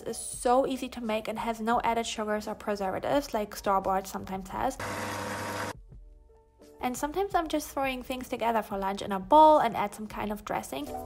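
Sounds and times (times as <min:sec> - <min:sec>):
food processor running: 0:04.8 - 0:05.8.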